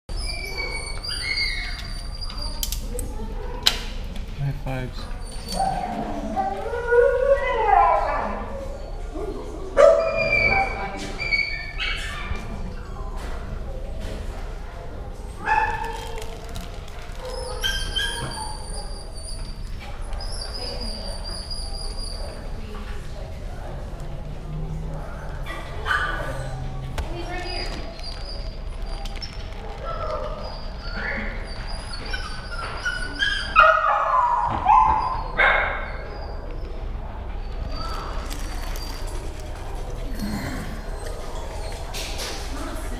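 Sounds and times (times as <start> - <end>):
dogs barking and yipping: 0.1 - 2.8, 5.2 - 12.5, 15.3 - 22.6, 25.1 - 36.8.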